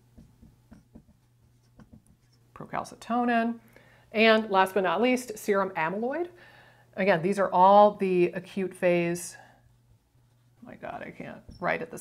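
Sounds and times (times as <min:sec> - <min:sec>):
marker writing on whiteboard: 0:00.2 - 0:02.4.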